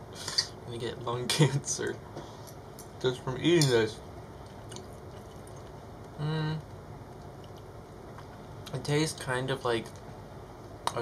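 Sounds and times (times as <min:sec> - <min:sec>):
person chewing: 0:04.4 - 0:06.2, 0:07.0 - 0:08.8.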